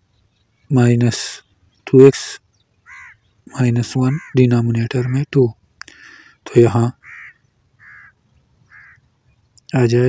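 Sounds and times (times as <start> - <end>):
faint bird calls: 0.0 - 9.9.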